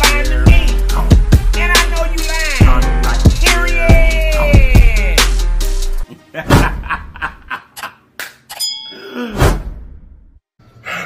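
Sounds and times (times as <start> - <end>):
bell-like ding: 8.5 - 9.1.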